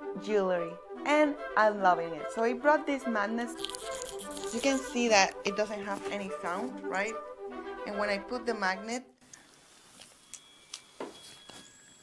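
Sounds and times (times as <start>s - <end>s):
faint high thin tones: 10.0s - 12.0s.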